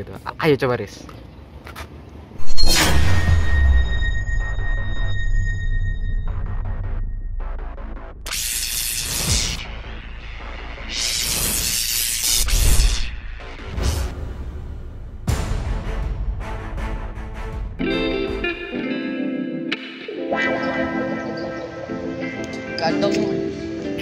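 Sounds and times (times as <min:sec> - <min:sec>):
booming hit: 0:02.4 - 0:08.3
whooshing swells with low boom: 0:02.4 - 0:08.3
deep rumble with ringing tones: 0:02.5 - 0:08.3.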